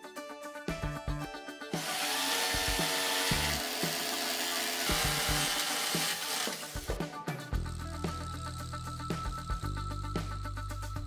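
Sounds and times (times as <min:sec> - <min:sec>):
background music: 0:00.0 - 0:11.0
jigsaw cutting wood: 0:01.8 - 0:07.0.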